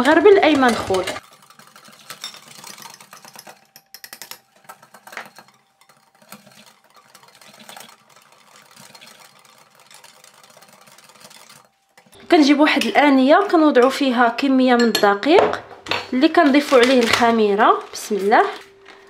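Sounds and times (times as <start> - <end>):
whisk scraping glass bowl: 0.1 - 12.2.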